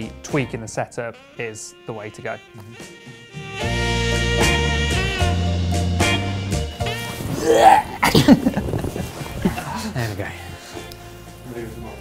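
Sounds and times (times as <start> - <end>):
music: 0.0 - 12.0
man crying out: 7.3 - 8.3
man laughing: 7.5 - 10.3.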